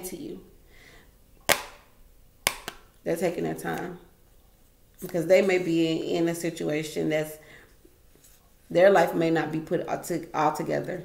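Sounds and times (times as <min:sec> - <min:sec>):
sharp smacks: 0:01.5 - 0:02.9.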